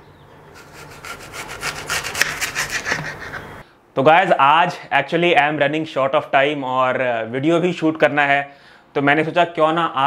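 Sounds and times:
knife cutting through apple: 0:00.6 - 0:03.2.

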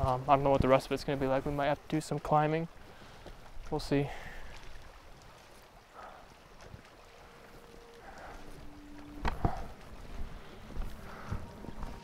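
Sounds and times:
light wind: 0:00.0 - 0:12.0
water lapping against rocks: 0:00.0 - 0:12.0.

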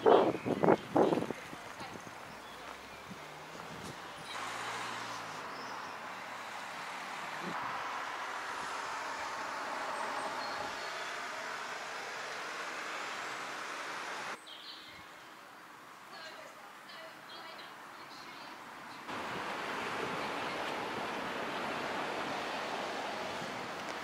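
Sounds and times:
road traffic rushing: 0:00.0 - 0:14.4, 0:18.9 - 0:24.0.

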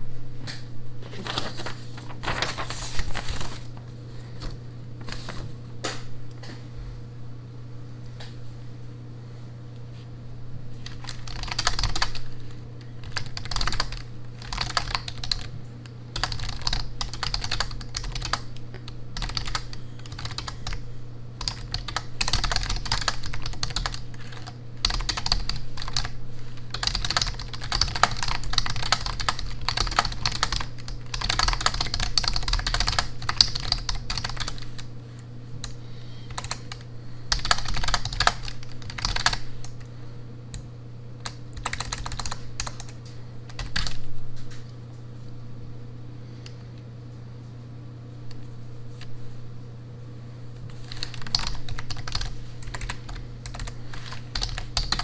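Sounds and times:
typing on computer keyboard: 0:10.8 - 0:12.3, 0:13.0 - 0:20.8, 0:21.4 - 0:34.9, 0:35.6 - 0:39.8, 0:41.2 - 0:44.0, 0:50.9 - 0:55.0.

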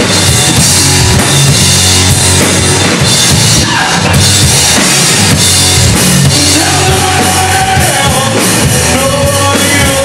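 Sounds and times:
live rock band: 0:00.0 - 0:10.0
low bass line: 0:00.0 - 0:10.0.

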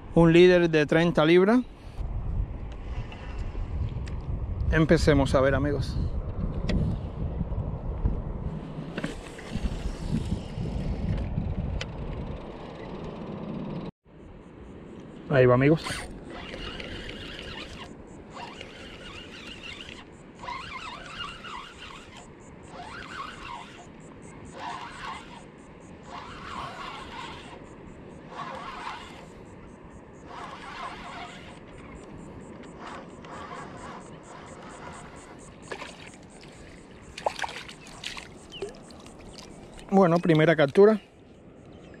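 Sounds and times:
wind and water: 0:00.0 - 0:42.0
short squeaky bursts: 0:15.8 - 0:29.5, 0:30.2 - 0:36.0
fishing reel cranking: 0:15.8 - 0:29.6, 0:30.2 - 0:39.8
fish splashing: 0:33.5 - 0:40.0.

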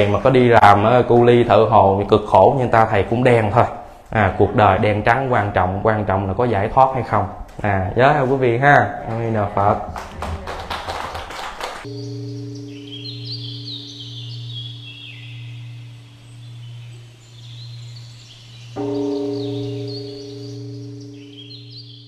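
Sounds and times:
deep bell ringing: 0:11.8 - 0:22.0
birdsong chirps: 0:11.9 - 0:22.0.

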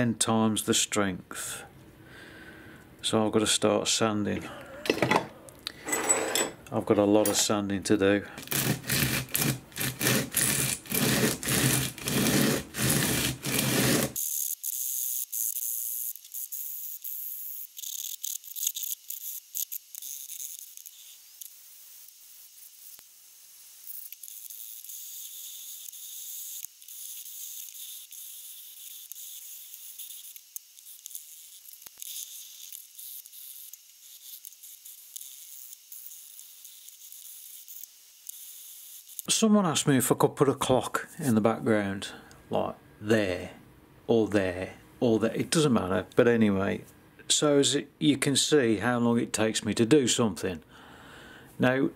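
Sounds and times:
part rubbed on coarse sandpaper: 0:08.4 - 0:14.2.

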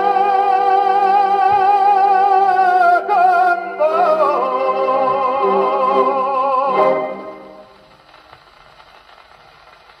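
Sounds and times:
record surface hiss and crackle: 0:00.0 - 0:10.0.

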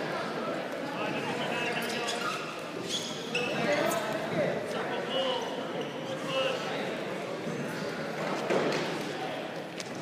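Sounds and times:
voices in echoing gym: 0:00.0 - 0:10.0
shoes squeaking on mat: 0:01.7 - 0:04.1.

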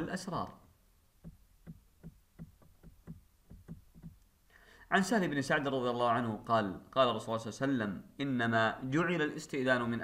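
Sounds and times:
quick light knocking: 0:01.2 - 0:04.2.

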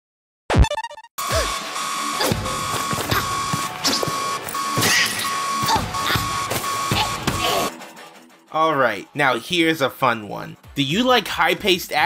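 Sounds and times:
alarm beeping: 0:00.6 - 0:07.7.

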